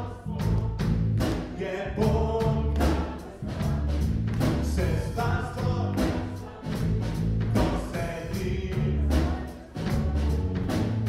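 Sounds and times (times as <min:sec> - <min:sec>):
man singing lead: 0:00.0 - 0:03.7, 0:04.5 - 0:10.4
bass guitar: 0:00.0 - 0:11.0
drum kit: 0:00.0 - 0:11.0.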